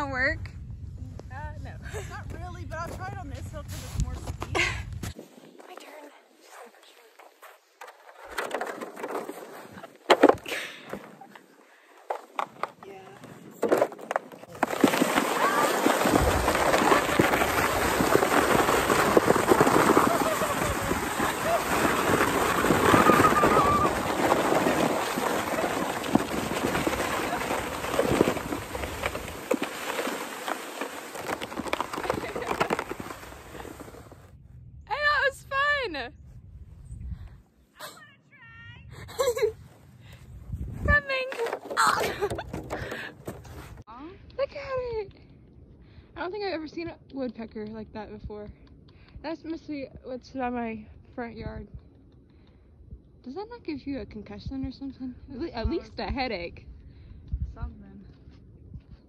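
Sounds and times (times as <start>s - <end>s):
sled scraping on snow: 5.6s - 11.5s, 12.1s - 34.3s.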